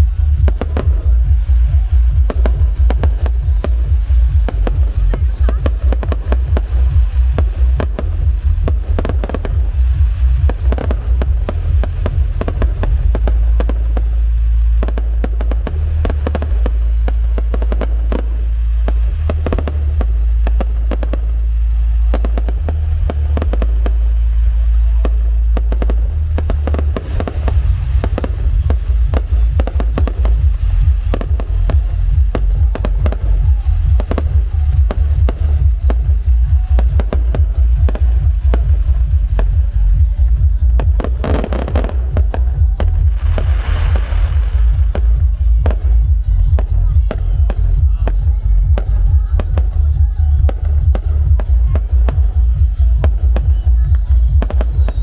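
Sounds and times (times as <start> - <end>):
fireworks cracking and banging: 0.0 - 55.0
loud music with deep bass: 0.0 - 55.0.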